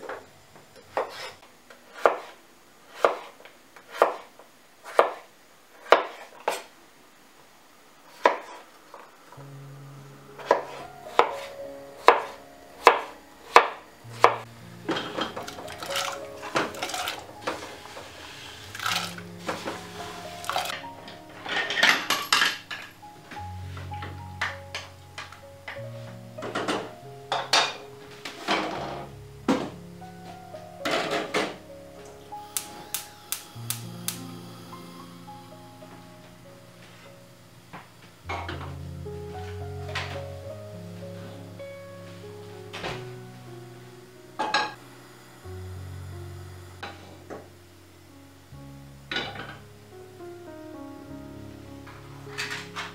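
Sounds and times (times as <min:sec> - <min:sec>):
knife cutting on wooden board: 0:02.0 - 0:02.4, 0:03.0 - 0:04.3, 0:10.4 - 0:11.5
soft instrumental music: 0:09.4 - 0:52.9.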